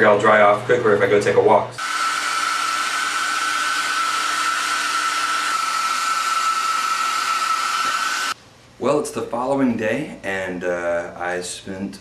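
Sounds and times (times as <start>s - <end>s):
blow dryer running: 1.8s - 8.4s.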